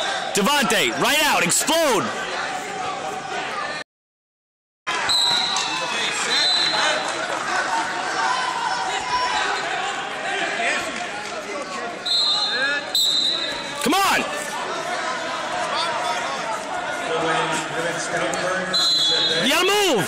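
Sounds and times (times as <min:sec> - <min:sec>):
crowd chatter in gym hall: 0:00.0 - 0:03.8, 0:04.9 - 0:20.0
loud shout: 0:04.9 - 0:10.8, 0:13.6 - 0:16.5
referee whistle blasts: 0:05.1 - 0:06.8, 0:12.0 - 0:13.7, 0:18.7 - 0:19.5.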